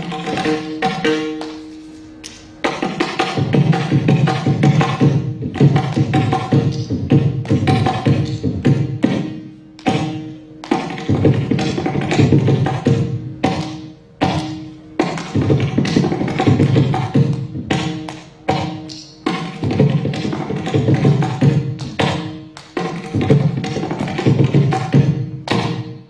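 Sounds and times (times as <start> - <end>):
mridangam rapid strokes: 0.0 - 26.0.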